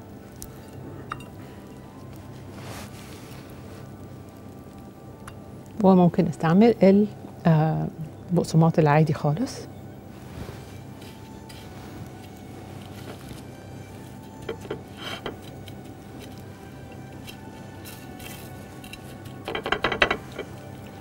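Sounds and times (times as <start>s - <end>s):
quiet background music: 0.0s - 21.0s
plates clinking: 14.4s - 15.6s, 19.3s - 21.0s.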